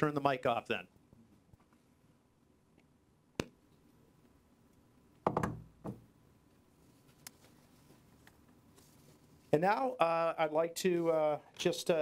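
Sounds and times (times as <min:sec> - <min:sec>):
microphone handling knocks: 0:05.2 - 0:06.1.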